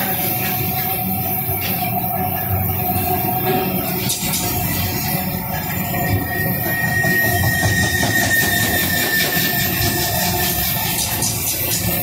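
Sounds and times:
freight train rolling past: 0:00.0 - 0:12.0
steady high-pitched tone: 0:00.0 - 0:12.0.

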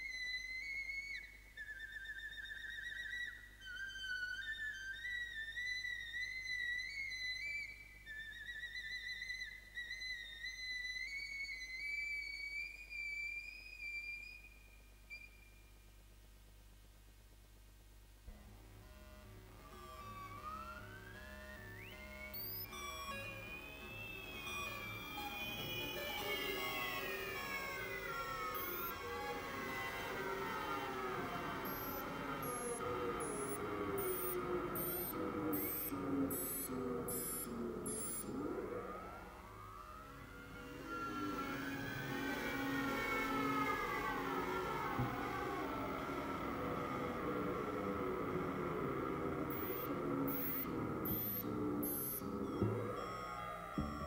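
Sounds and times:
synthesizer pitch glides: 0:18.3 - 0:54.0.

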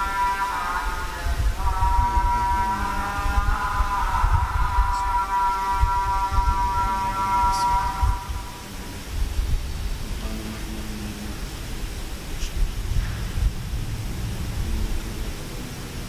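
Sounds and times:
person singing a long note: 0:00.0 - 0:09.2, 0:10.0 - 0:11.8, 0:13.0 - 0:16.0
low rumbling thumps: 0:07.5 - 0:16.0.

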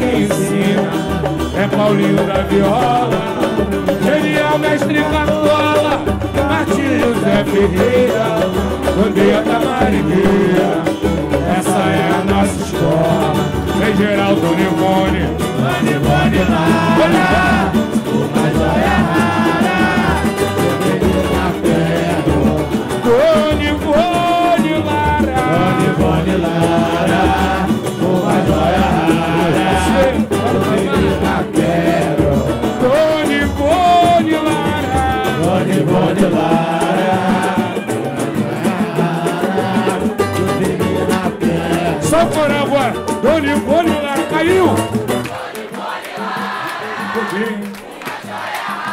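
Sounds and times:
tambourine: 0:00.0 - 0:47.6
small guitar strumming: 0:00.0 - 0:47.7
acoustic guitars: 0:00.0 - 0:48.9
deep hand drum beat: 0:00.0 - 0:48.9.

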